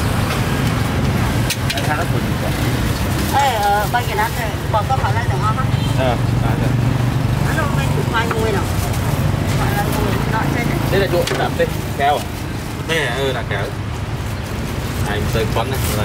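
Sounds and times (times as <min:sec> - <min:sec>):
low traffic rumble: 0:00.0 - 0:16.0
people talking: 0:03.3 - 0:06.7, 0:07.4 - 0:08.8, 0:09.5 - 0:12.3, 0:15.0 - 0:16.0.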